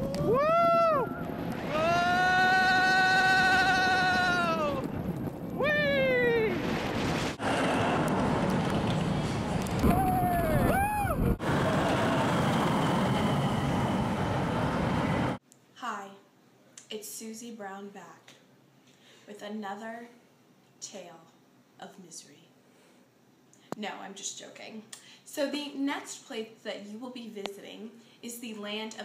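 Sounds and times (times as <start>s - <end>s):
riders whooping and screaming: 0.0s - 4.9s, 5.6s - 6.6s, 7.4s - 8.3s, 9.8s - 12.8s
roller coaster rushing: 0.0s - 15.4s.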